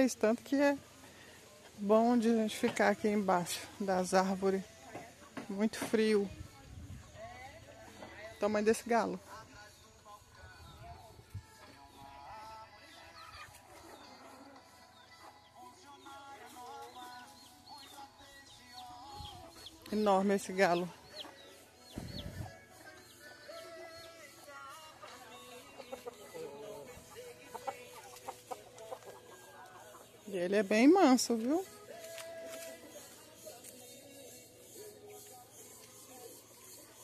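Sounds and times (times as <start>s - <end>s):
small birds calling: 8.0s - 37.0s
chickens calling: 11.6s - 37.0s.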